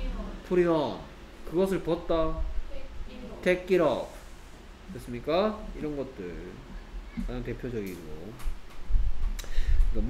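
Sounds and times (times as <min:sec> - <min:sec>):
man lecturing: 0:04.9 - 0:08.4.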